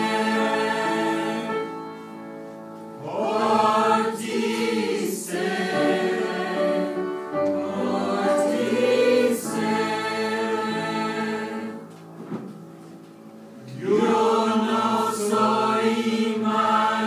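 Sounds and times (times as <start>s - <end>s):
choir singing long chords: 0.0s - 2.4s, 3.0s - 12.0s, 13.6s - 17.0s.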